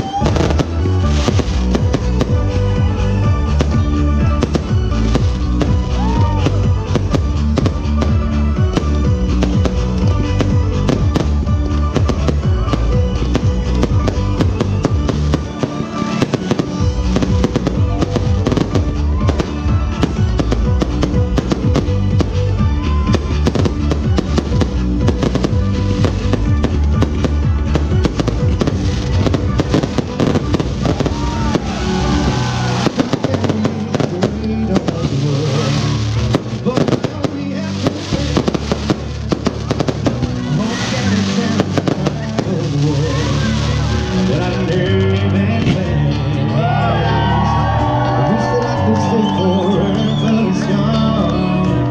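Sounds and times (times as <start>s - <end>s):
fireworks bursting and crackling: 0.0s - 45.8s
music with steady bass beat: 0.0s - 48.4s.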